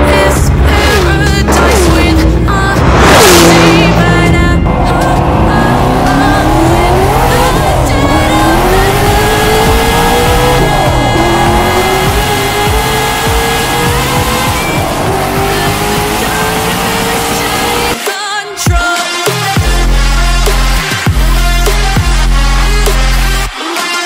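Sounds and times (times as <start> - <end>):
car engine accelerating hard: 0.0 - 18.0
music: 0.0 - 24.0.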